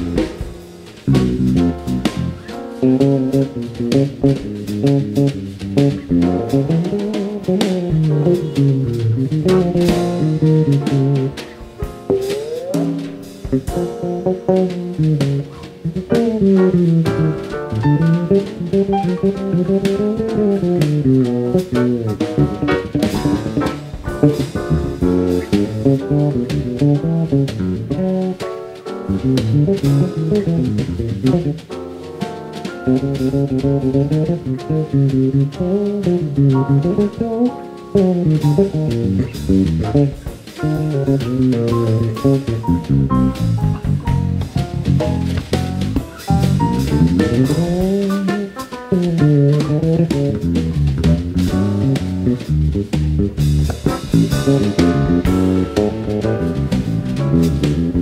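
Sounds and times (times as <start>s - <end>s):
drum cymbals: 0.0s - 34.7s, 36.0s - 58.0s
electric bass jazz solo: 0.0s - 58.0s.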